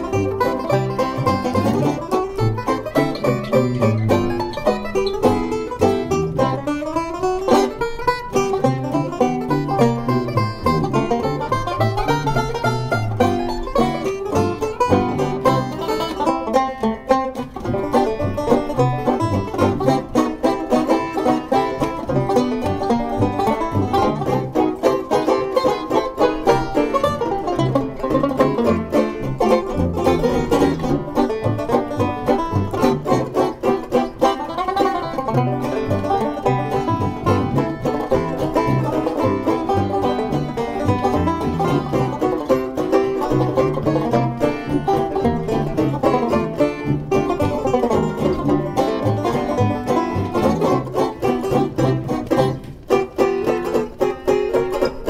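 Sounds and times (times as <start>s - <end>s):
banjos playing jazz tune: 0.0s - 55.0s
tuba bass line: 0.0s - 55.0s.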